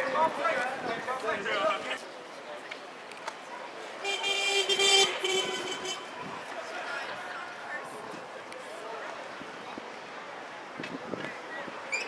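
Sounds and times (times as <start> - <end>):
street traffic: 0.0 - 12.0
vehicle horn: 4.0 - 6.1.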